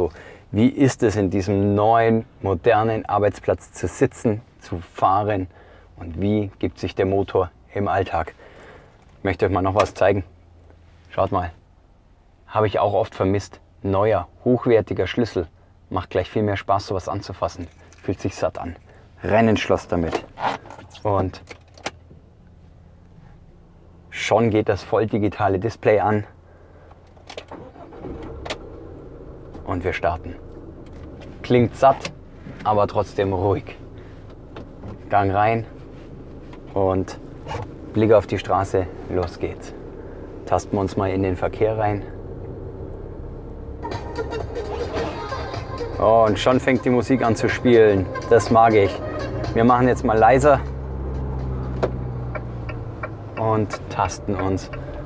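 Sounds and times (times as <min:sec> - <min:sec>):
diesel engine starting and idling: 0:26.3 - 0:55.0.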